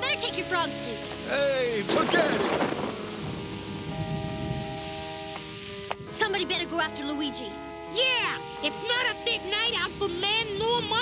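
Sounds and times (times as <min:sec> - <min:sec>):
background music: 0:00.0 - 0:11.0
heavy rain hiss: 0:00.0 - 0:11.0.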